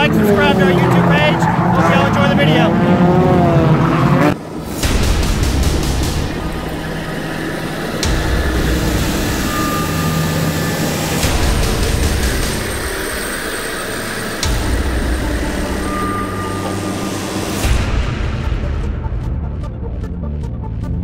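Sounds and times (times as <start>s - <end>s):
heavy machinery diesel engines: 0.0s - 18.3s.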